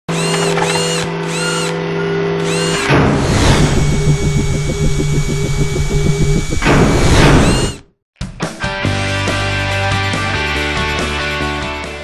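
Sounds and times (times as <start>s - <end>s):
servo whirs rising and falling: 0.1s - 7.9s
steady electric hum: 3.4s - 7.8s.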